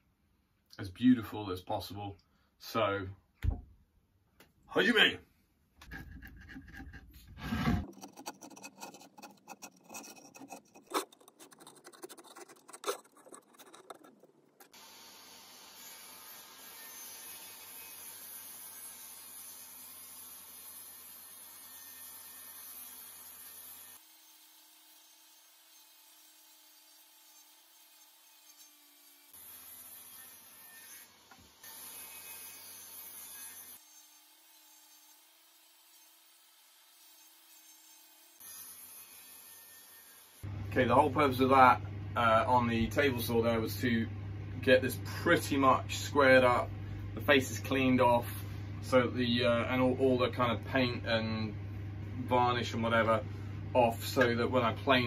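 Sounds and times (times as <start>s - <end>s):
steel blade scraping wood: 5.8s - 14.8s.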